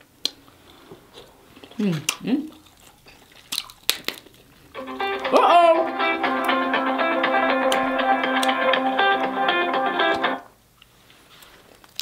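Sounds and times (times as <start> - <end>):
crab shell cracking: 2.1 - 4.5
phone ringtone tune: 4.8 - 10.4.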